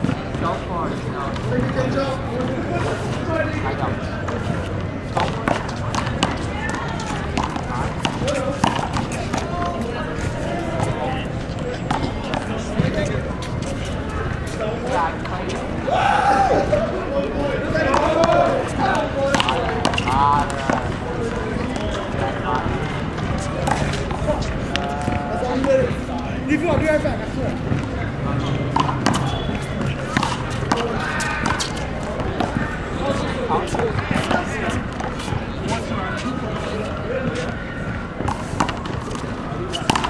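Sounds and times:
men talking: 0:00.3 - 0:37.6.

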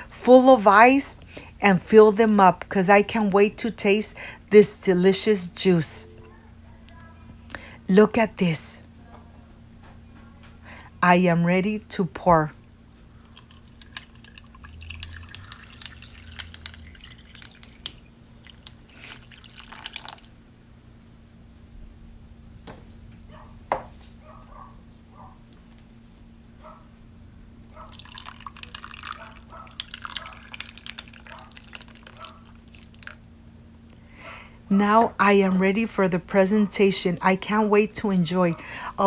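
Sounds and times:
juice pouring over ice: 0:13.2 - 0:21.5, 0:27.9 - 0:34.0
ice cubes clicking: 0:13.3 - 0:20.3, 0:27.9 - 0:33.2.

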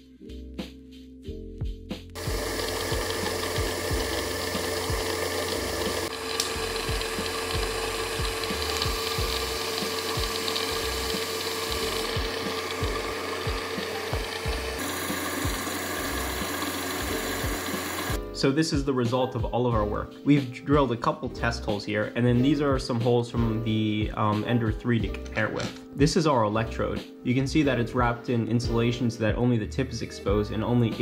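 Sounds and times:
background music: 0:00.0 - 0:31.0
liquid spraying and hissing: 0:02.2 - 0:18.2
machine hum: 0:02.2 - 0:18.2.

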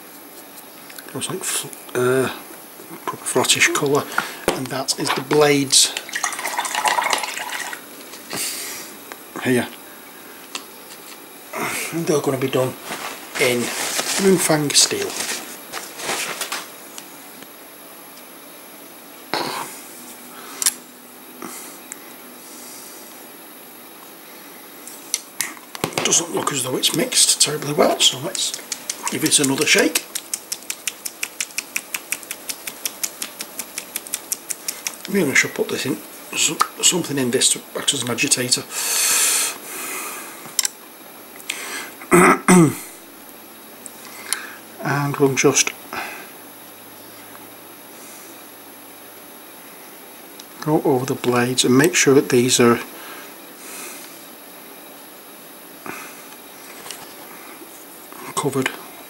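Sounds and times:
man clearing his throat: 0:19.3 - 0:19.7, 0:42.1 - 0:42.9.

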